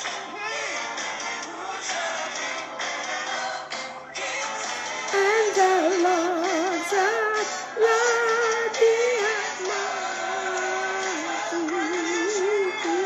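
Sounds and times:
backing music: 0:00.0 - 0:13.0
woman singing with vibrato: 0:05.1 - 0:13.0.

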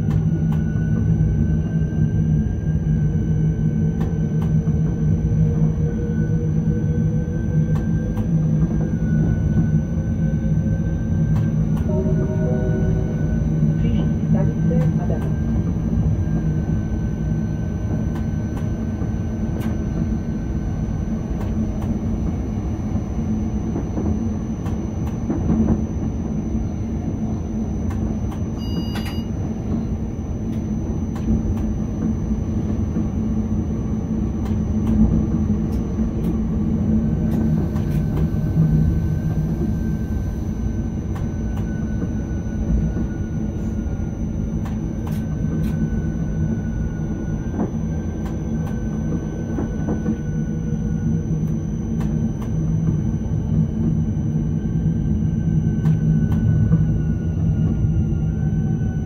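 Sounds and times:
faint traction motor whine: 0:00.0 - 0:59.0
train wheels rumbling on track: 0:00.0 - 0:59.0
brief beep: 0:28.5 - 0:29.4.

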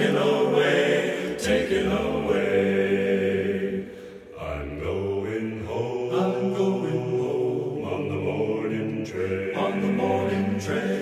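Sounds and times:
choir singing chords: 0:00.0 - 0:11.0.

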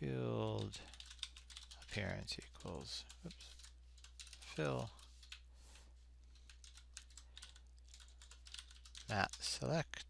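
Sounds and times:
computer keyboard typing: 0:00.4 - 0:05.4, 0:06.3 - 0:09.6.

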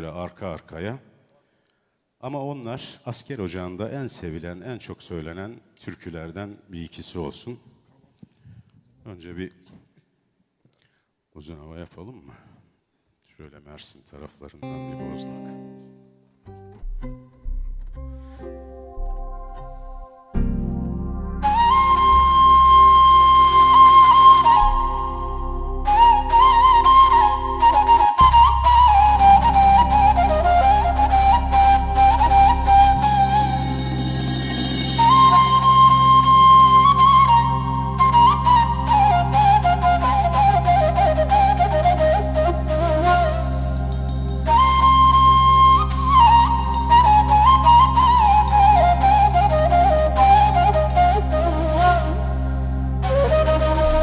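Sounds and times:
flute-like wind instrument melody: 0:20.0 - 0:54.0.

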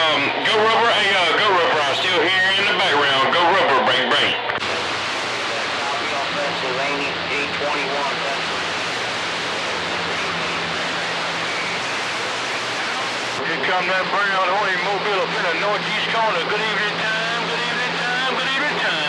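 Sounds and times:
faint voices in radio noise: 0:00.0 - 0:19.0
radio band noise hiss: 0:00.0 - 0:19.0
warbling radio voice: 0:00.0 - 0:19.0.

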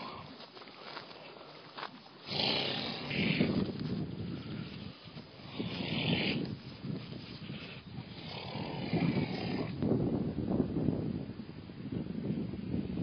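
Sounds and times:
horses chewing grass: 0:00.0 - 0:09.6.

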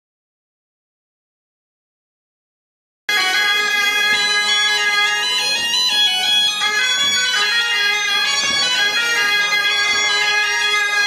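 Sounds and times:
bagpipe dance tune: 0:03.1 - 0:11.0.

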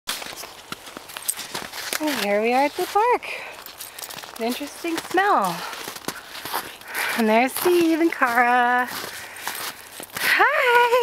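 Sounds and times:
footsteps crunching in snow: 0:00.1 - 0:11.0.

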